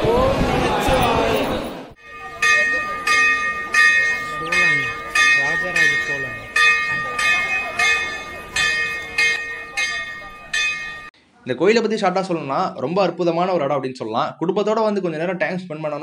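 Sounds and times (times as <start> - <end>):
voices: 0.0 - 11.1
temple bell ringing: 2.0 - 11.2.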